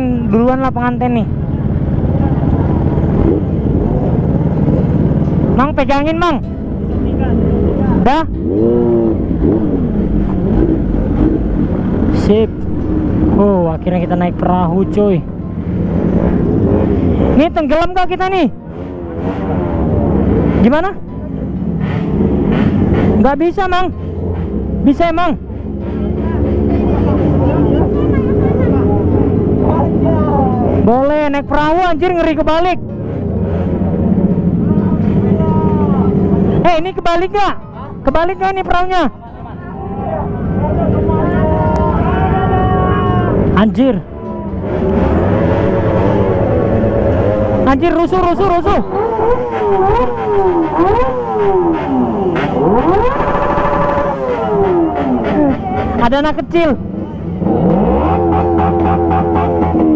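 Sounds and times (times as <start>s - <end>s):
engines idling: 0.0s - 59.9s
faint voices: 48.7s - 59.9s.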